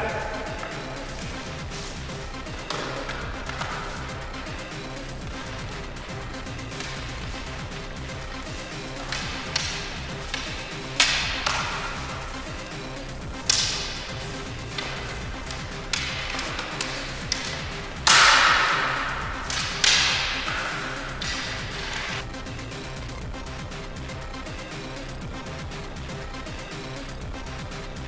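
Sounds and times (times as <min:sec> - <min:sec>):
training swords clashing: 0:00.0 - 0:22.2
background music: 0:00.0 - 0:28.0.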